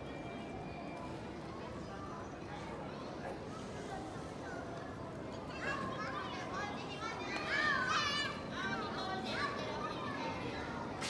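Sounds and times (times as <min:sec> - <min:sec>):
children calling and chattering: 0:01.6 - 0:11.0.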